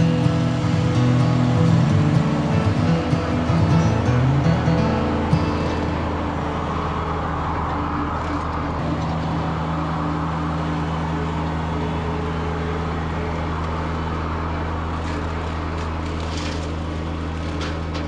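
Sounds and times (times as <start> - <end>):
diesel tractor engine under load: 0.0 - 18.0
rotary cutter cutting weeds: 0.0 - 18.0.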